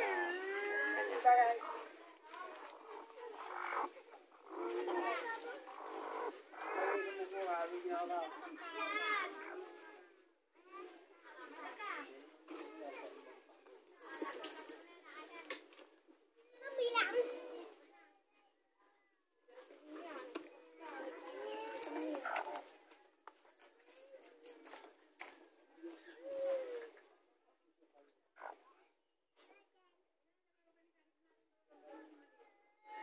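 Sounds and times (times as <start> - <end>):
hen clucking and growling: 0.0 - 7.4, 21.1 - 22.7
faint background voices: 0.0 - 30.0.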